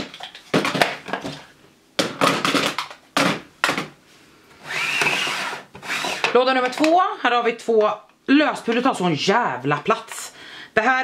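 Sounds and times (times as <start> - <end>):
plastic jars clattering: 0.0 - 3.9.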